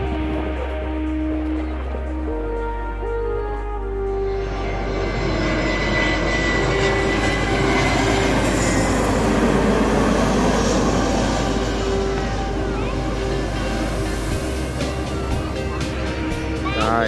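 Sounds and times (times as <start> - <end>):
high jet whine: 0.0 - 17.0
jet airliner engine roar: 0.0 - 17.0.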